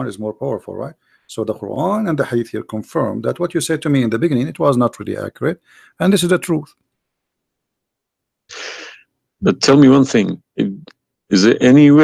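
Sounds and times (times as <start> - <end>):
person speaking: 0.0 - 6.8, 8.5 - 12.0
sharp breath into microphone: 8.5 - 9.0.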